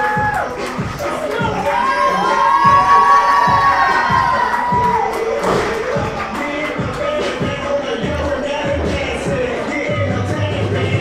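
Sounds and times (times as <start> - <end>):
crowd cheering and shouting: 0.0 - 11.0
music with steady beat: 0.0 - 11.0.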